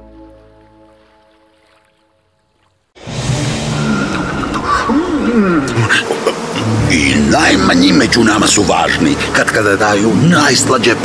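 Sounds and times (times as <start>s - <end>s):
bees buzzing: 3.0s - 11.0s.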